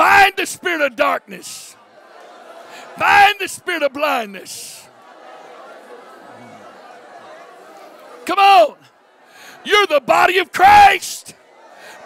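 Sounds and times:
murmur of many voices praying: 0.1s - 10.9s.

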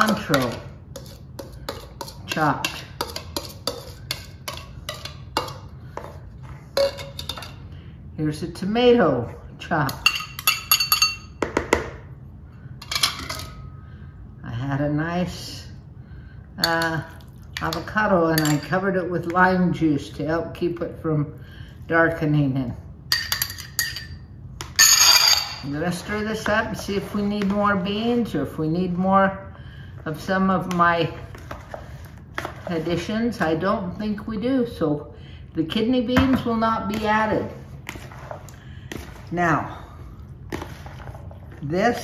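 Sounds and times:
spoon scraping glass dish: 0.3s - 5.2s
glass bowl clinking: 10.0s - 11.4s, 24.8s - 25.7s.

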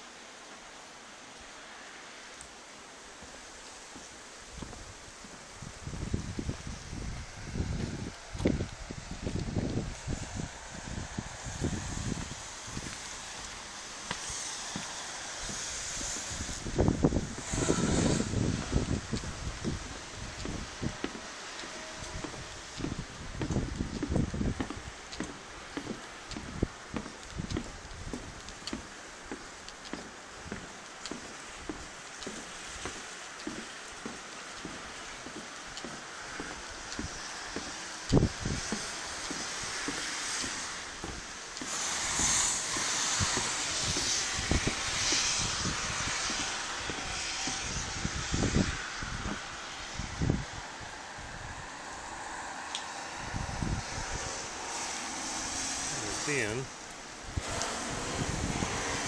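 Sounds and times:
steady rushing noise: 0.0s - 59.0s
footsteps on wooden planks: 2.4s - 50.6s.

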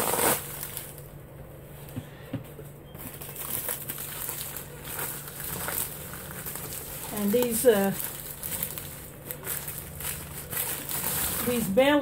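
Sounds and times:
plastic wrap rustling: 0.0s - 2.0s, 2.6s - 12.0s.

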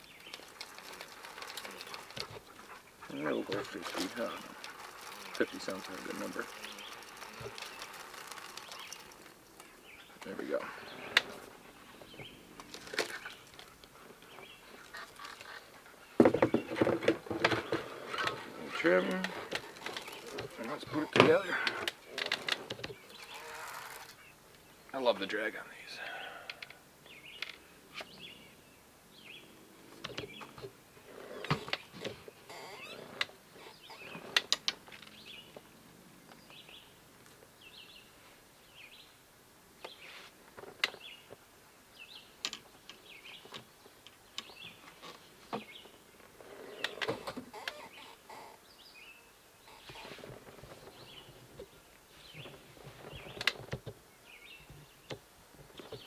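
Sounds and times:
fishing rod clicks and rustles: 0.0s - 9.7s, 12.6s - 14.0s, 16.6s - 24.3s
small birds chirping: 0.0s - 39.2s, 39.8s - 56.0s.

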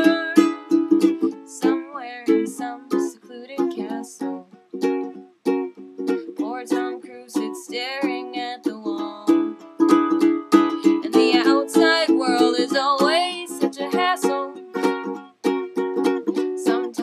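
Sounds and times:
person singing: 0.0s - 4.6s, 6.2s - 15.2s, 16.2s - 17.0s
ukulele strumming chords: 0.0s - 17.0s.

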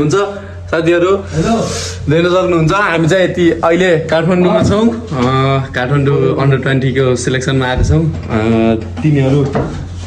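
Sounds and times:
man speaking: 0.0s - 9.6s
steady low hum: 0.0s - 10.0s.

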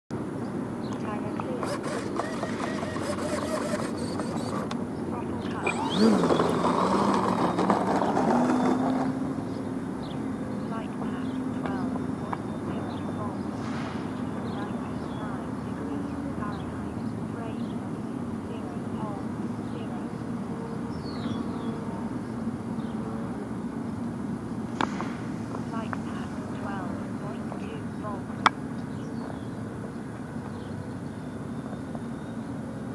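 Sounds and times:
electric plane motor and propeller: 1.2s - 10.3s.

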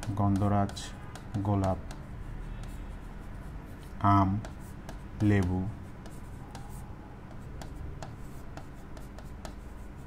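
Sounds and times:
marker writing on board: 0.0s - 10.0s.

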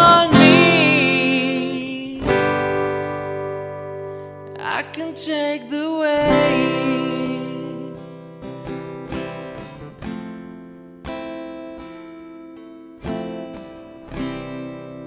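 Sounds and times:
acoustic guitar strums: 0.0s - 15.0s.

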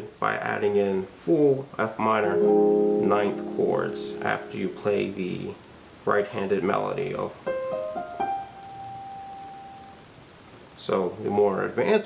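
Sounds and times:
digital piano high note: 2.4s - 5.5s.

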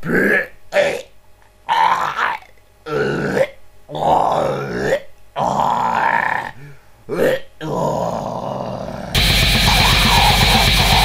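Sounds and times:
man grunting and groaning: 1.7s - 11.0s.

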